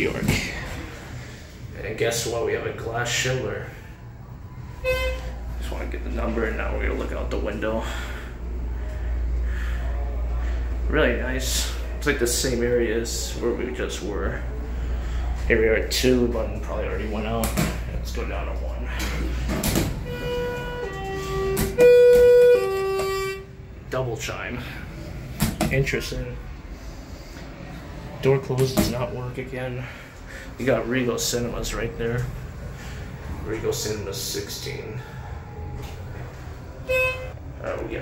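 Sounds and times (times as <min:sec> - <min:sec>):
low elevator hum: 0:00.0 - 0:38.0
buzzy elevator arrival tone: 0:03.6 - 0:09.3, 0:20.0 - 0:23.7, 0:33.4 - 0:37.7.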